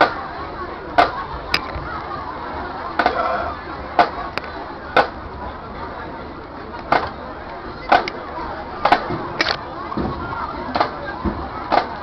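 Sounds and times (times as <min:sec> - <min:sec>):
crowd chatter: 0:00.0 - 0:12.0
drumsticks clicking a beat: 0:07.9 - 0:08.2.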